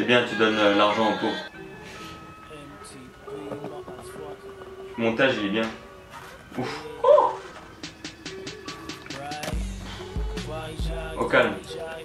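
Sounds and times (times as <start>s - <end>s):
heavy bass line: 9.6s - 11.3s.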